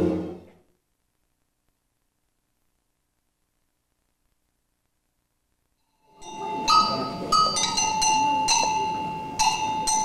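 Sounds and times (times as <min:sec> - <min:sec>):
bell-like metal note ringing: 0:05.9 - 0:10.0.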